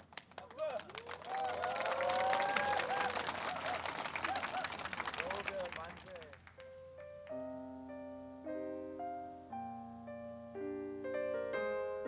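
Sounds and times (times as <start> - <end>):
audience clapping and cheering: 0.0 - 6.7
shouts and whoops: 0.9 - 4.7.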